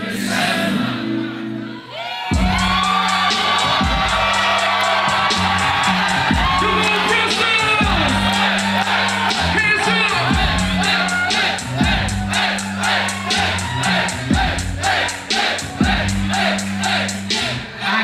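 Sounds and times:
crowd shouting and whooping: 0:01.6 - 0:18.0
hip-hop music with heavy bass beat: 0:02.3 - 0:18.0.

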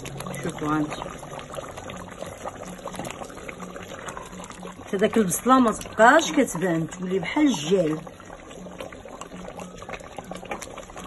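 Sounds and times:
sauce bubbling in a pot: 0:00.0 - 0:11.0.

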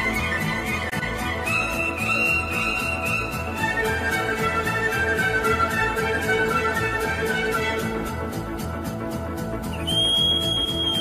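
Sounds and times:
pan flute music with steady beat: 0:00.0 - 0:11.0.

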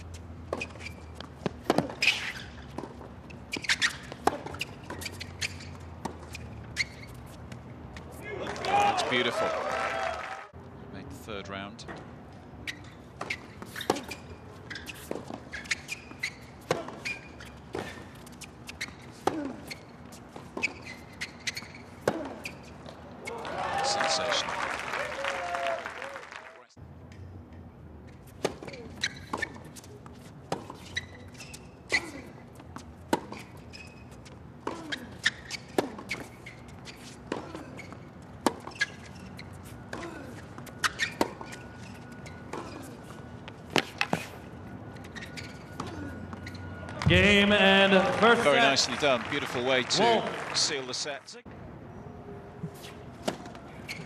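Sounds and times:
shoe squeaks: 0:00.0 - 0:08.2, 0:12.4 - 0:23.4, 0:28.0 - 0:47.8, 0:51.9 - 0:54.0
racket hitting tennis ball: 0:01.2 - 0:06.4, 0:37.0 - 0:44.5, 0:52.6 - 0:53.8.

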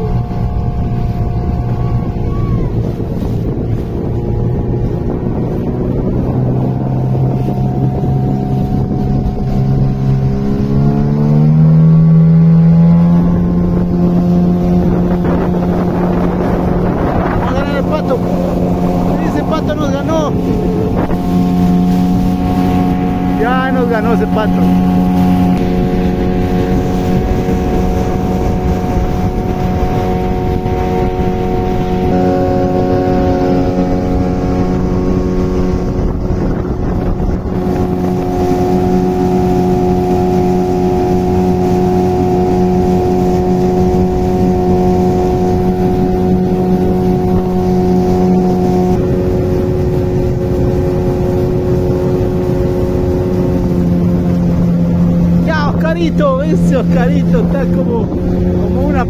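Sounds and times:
motorboat engine running: 0:00.0 - 0:59.0.

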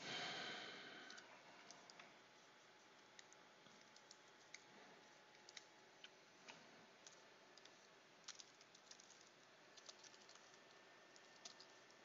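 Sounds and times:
computer keyboard clicking: 0:03.2 - 0:04.6, 0:05.3 - 0:05.7, 0:07.0 - 0:10.6, 0:11.2 - 0:11.9.

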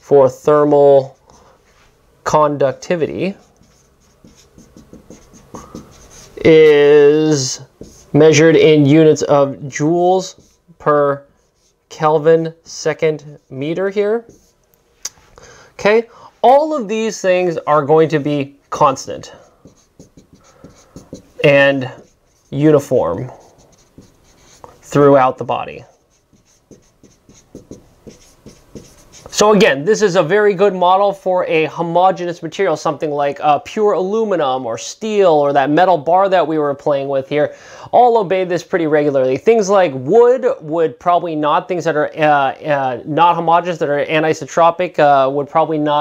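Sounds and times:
marker writing on a whiteboard: 0:02.4 - 0:08.4, 0:10.2 - 0:10.7, 0:11.4 - 0:14.6, 0:17.3 - 0:29.6.

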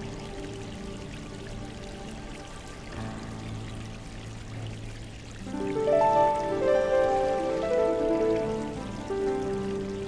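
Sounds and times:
water bubbling and pouring: 0:00.0 - 0:10.0.

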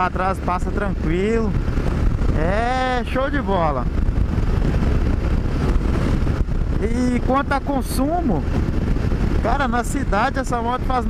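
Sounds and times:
man speaking: 0:00.0 - 0:01.6, 0:02.3 - 0:03.9, 0:06.8 - 0:08.4, 0:09.4 - 0:11.0
motorcycle engine cruising: 0:00.0 - 0:11.0
wind rumble on microphone: 0:00.0 - 0:11.0.

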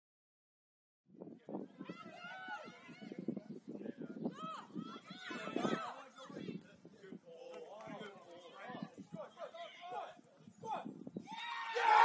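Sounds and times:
open-air field noise: 0:01.1 - 0:12.0.

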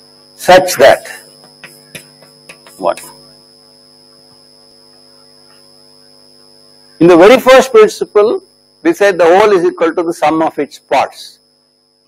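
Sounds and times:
electrical mains hum: 0:00.0 - 0:12.0
faint high whine: 0:00.0 - 0:12.0.

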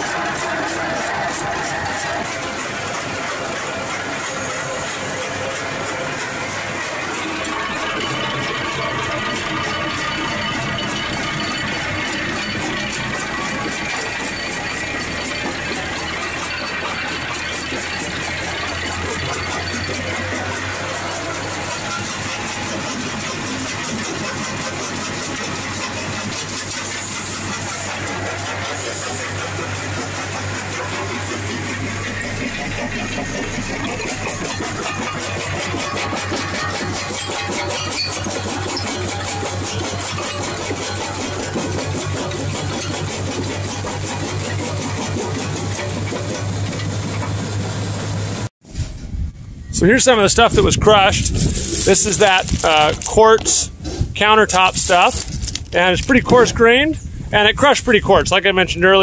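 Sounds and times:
crusher and conveyor noise: 0:00.0 - 0:59.0
diesel engine hum: 0:00.0 - 0:59.0.

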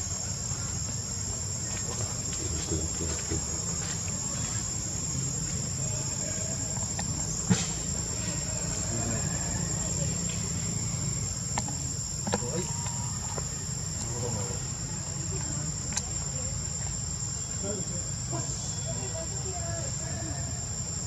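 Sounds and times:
insects buzzing: 0:00.0 - 0:21.0.

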